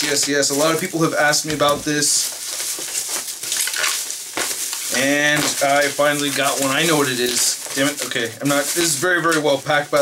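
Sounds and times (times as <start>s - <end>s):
plastic wrap crinkling: 0.0s - 10.0s.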